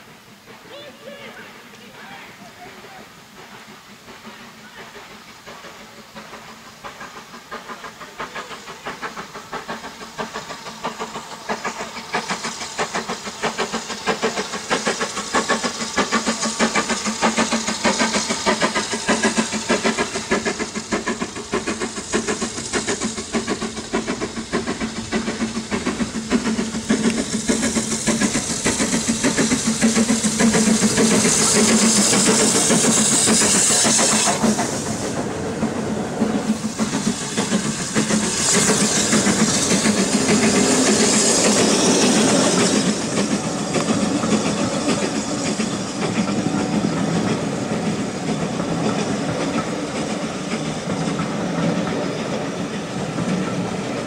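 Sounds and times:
steam hiss: 0.0 - 54.0
steam locomotive exhaust beats: 0.0 - 54.0.

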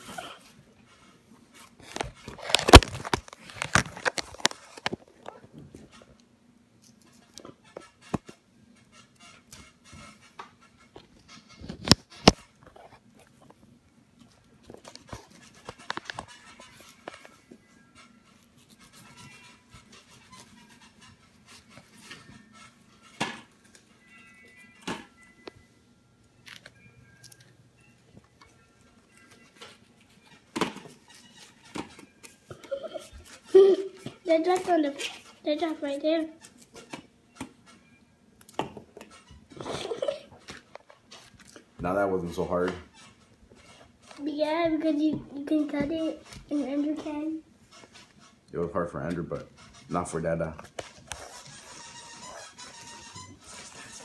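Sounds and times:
faint background music: 0.0 - 54.0.

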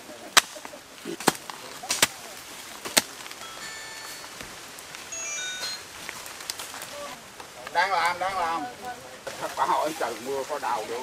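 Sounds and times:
steady background hiss: 0.0 - 11.0
high chime-like tones: 3.4 - 6.2.

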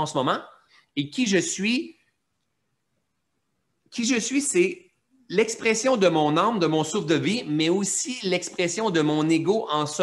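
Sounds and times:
man speaking: 0.0 - 2.2, 3.8 - 10.0.

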